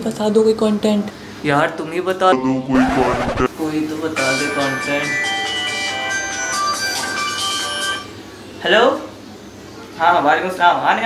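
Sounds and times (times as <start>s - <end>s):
mobile phone ringtone melody: 4.2s - 8.1s.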